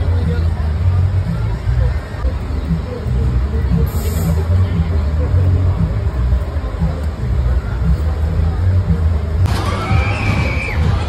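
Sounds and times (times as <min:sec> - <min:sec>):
busy mix of voices: 0:00.0 - 0:11.0
crowd chatter: 0:00.0 - 0:11.0
loud bass-heavy music: 0:00.0 - 0:11.0.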